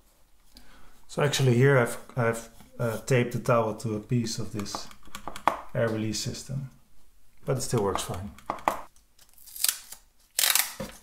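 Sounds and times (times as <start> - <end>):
duct tape pulled and torn: 9.2 - 11.0.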